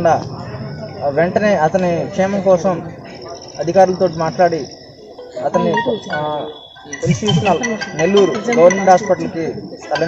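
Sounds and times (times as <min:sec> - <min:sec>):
high-pitched insect trill: 0:03.3 - 0:10.0
man speaking: 0:05.4 - 0:09.5.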